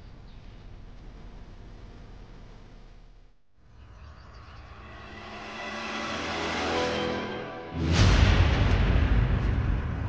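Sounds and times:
rising whoosh riser: 4.3 - 10.0.

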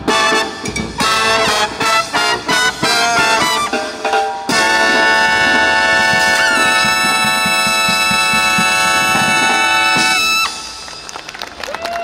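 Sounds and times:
brass band holding a chord: 0.0 - 10.7
drums beating quickly: 4.5 - 10.5.

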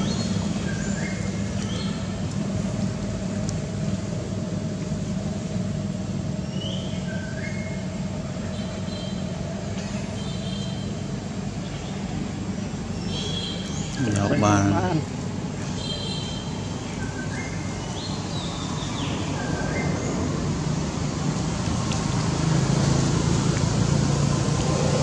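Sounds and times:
low motor drone: 0.0 - 10.3.

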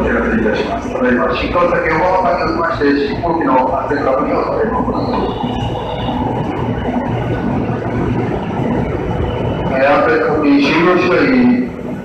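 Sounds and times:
electric train running noise: 0.0 - 12.0.

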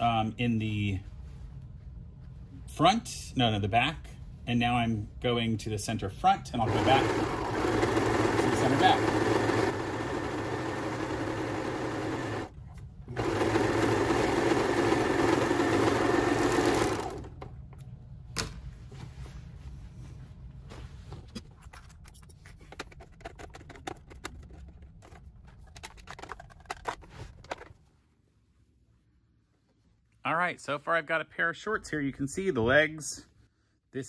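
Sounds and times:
serger sewing machine running: 6.6 - 12.5, 13.1 - 17.4
fabric rustling: 18.6 - 22.4.

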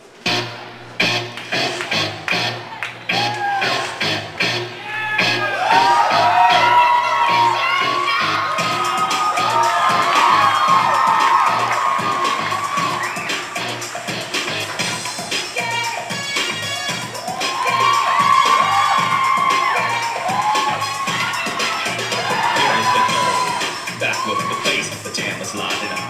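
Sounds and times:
dance music over loudspeakers: 0.2 - 26.0
crowd cheering and shrieking: 1.7 - 26.0.

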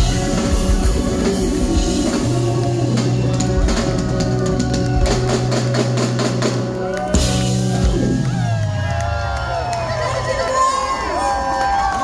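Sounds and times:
drum and cymbal hits: 0.0 - 8.8
live ska band playing: 0.0 - 10.7
crowd cheering and shouting: 0.0 - 12.0.

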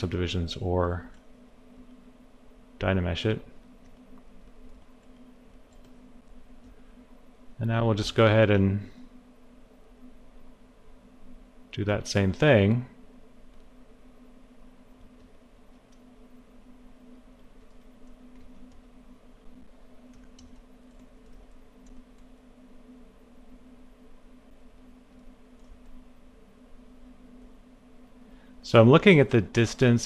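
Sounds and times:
low electrical hum: 0.0 - 30.0
faint computer clicks: 3.8 - 6.8, 20.0 - 22.4.

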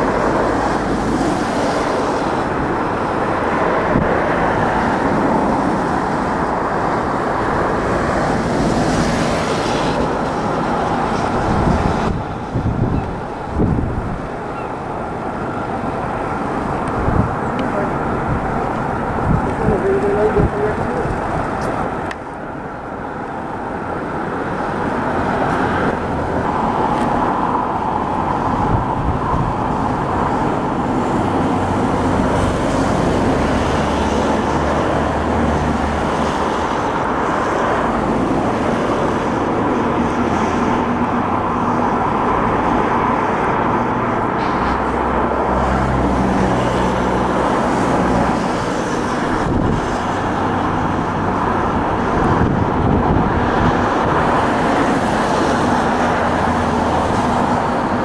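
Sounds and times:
diesel locomotive engine: 0.0 - 58.0.

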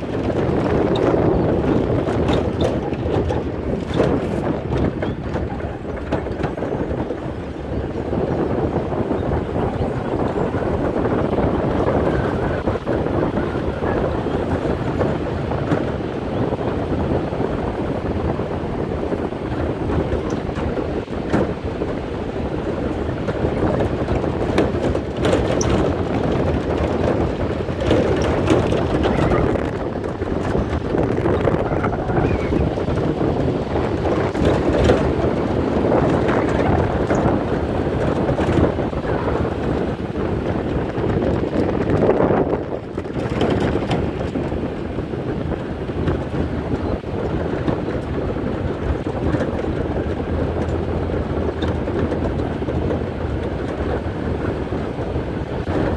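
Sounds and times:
knocks from bumpy road: 0.0 - 55.9
pickup truck rumbling: 0.0 - 55.9
wind buffeting microphone: 0.0 - 55.9.

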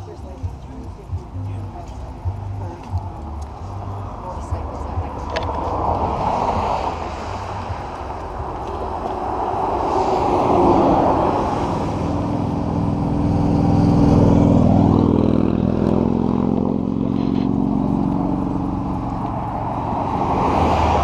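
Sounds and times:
motorcycle passing: 0.0 - 21.0.

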